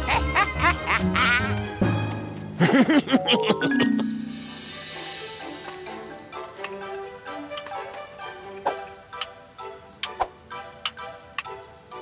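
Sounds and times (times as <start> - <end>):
man chuckling: 0.0 - 1.5, 2.6 - 4.0
background music: 0.0 - 12.0.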